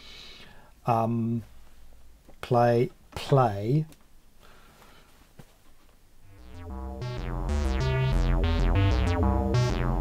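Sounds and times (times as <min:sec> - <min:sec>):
plucked synth notes: 0:06.3 - 0:10.0
synth bass line: 0:06.3 - 0:10.0.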